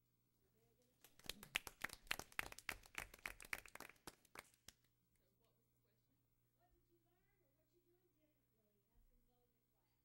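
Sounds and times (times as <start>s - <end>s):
people clapping: 1.0s - 5.0s.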